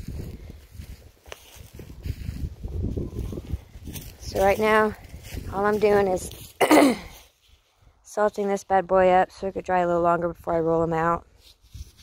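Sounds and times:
footsteps on dry leaves and dirt: 0.0s - 10.0s, 11.3s - 12.0s.

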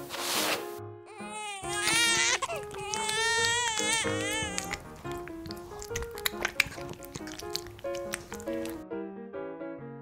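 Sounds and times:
light background music: 0.0s - 10.0s
child-like crying wail: 1.1s - 4.8s.

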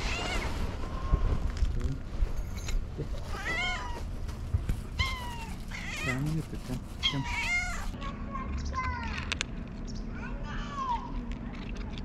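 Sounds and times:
cat meowing: 0.0s - 1.2s, 3.3s - 4.0s, 5.0s - 6.3s, 7.0s - 8.0s.

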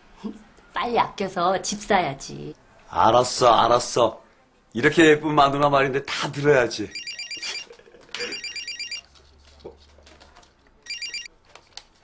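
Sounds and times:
telephone ringing electronic trill: 6.9s - 9.0s, 10.9s - 11.3s.

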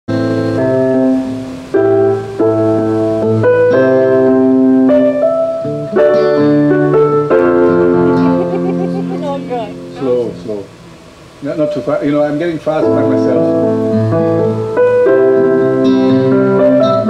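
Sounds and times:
acoustic guitar: 0.1s - 17.0s
keyboard playing chords: 0.1s - 17.0s.

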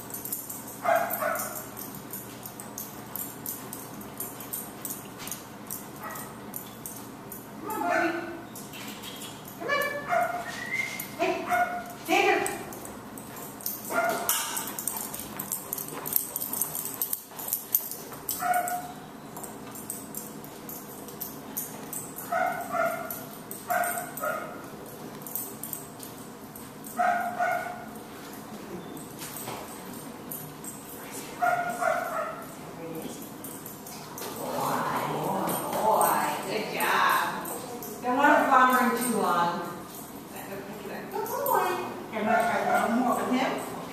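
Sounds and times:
dog whining: 9.6s - 11.2s.

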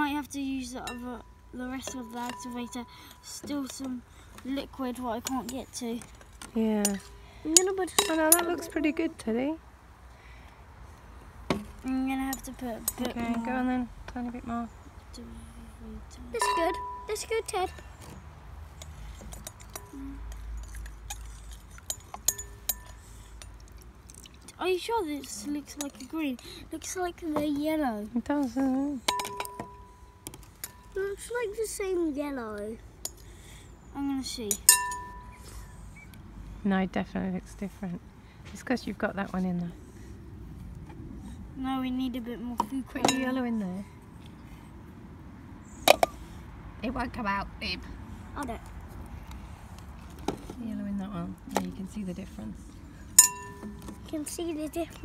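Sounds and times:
spoon clinking on glass: 16.4s - 17.0s, 21.9s - 23.0s, 34.6s - 35.3s, 53.2s - 53.7s.

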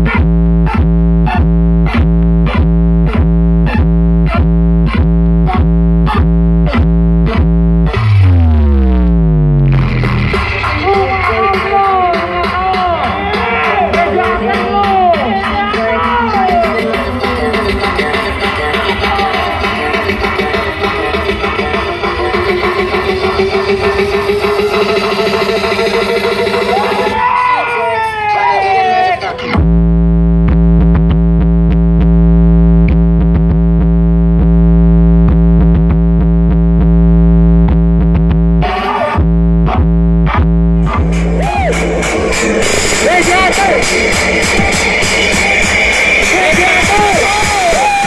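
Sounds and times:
loud music over loudspeakers: 0.0s - 48.0s.

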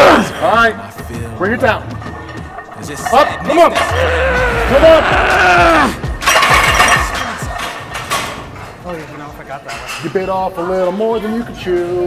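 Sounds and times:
background music with beat: 0.0s - 8.2s
man straining shout: 3.9s - 6.0s.

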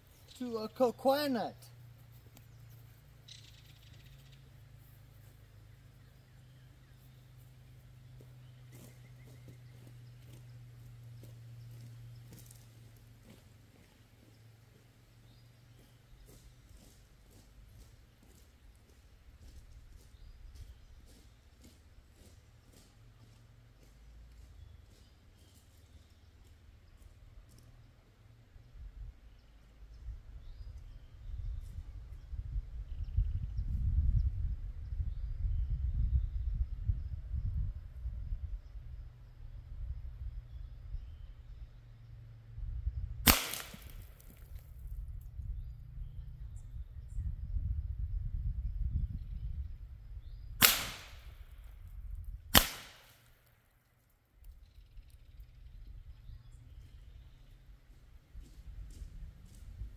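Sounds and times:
low gusting rumble: 28.6s - 43.3s, 44.8s - 50.6s
air rifle shots cracking: 43.2s - 44.3s, 50.6s - 51.5s, 52.5s - 53.4s.

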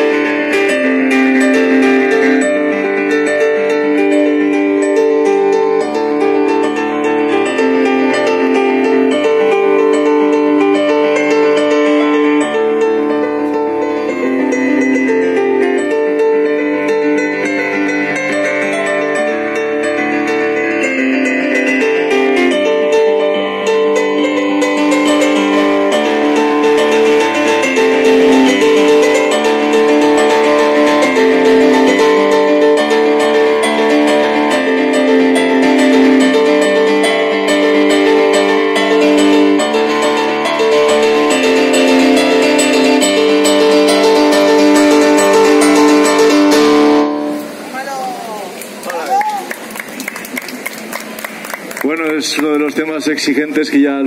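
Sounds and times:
electric piano playing chords: 0.0s - 53.1s.

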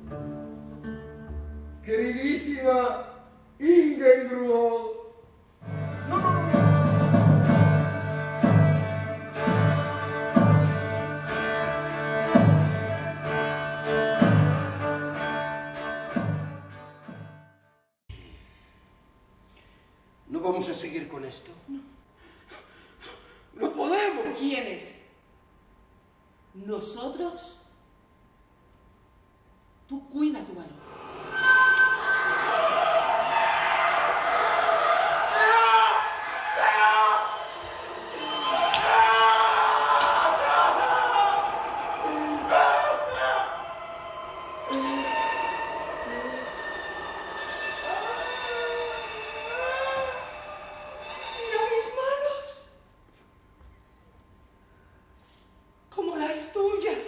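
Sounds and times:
breathy vocal sounds: 43.4s - 47.9s
high voice-like sliding line: 44.0s - 50.1s.

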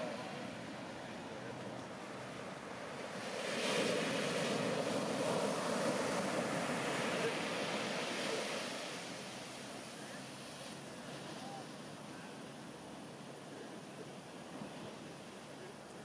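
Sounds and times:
whitewater washing up sand: 0.0s - 16.0s
wave crashing onto beach: 2.9s - 13.7s.

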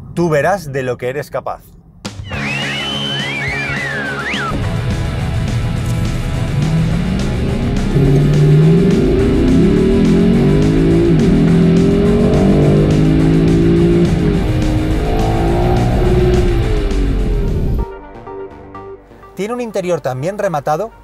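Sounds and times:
car engine accelerating hard: 4.5s - 17.8s.

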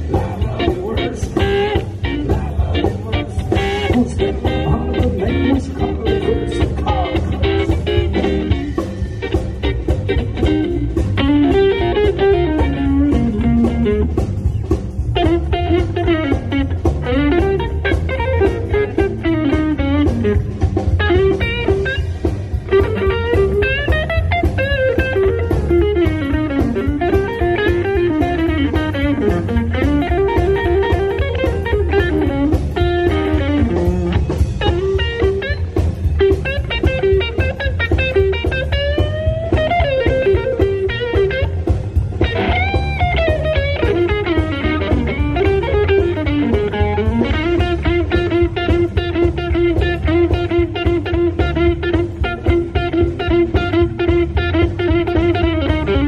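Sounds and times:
bass guitar: 0.0s - 56.0s
drums: 0.0s - 56.0s
electric guitar lead with bends: 0.0s - 56.0s.

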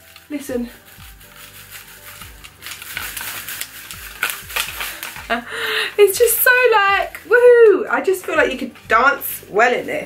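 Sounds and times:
sequins clattering on shaken dress: 0.0s - 5.4s.

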